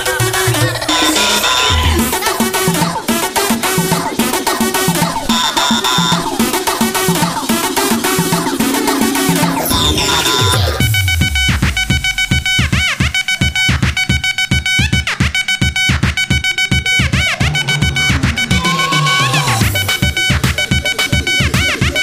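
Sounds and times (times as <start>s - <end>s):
electronic dance music: 0.0s - 22.0s.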